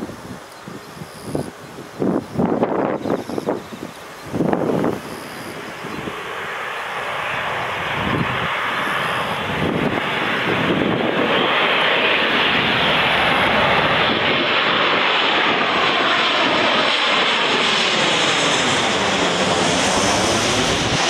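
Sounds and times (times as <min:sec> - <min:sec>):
jet airliner passing overhead: 0:00.0 - 0:21.0.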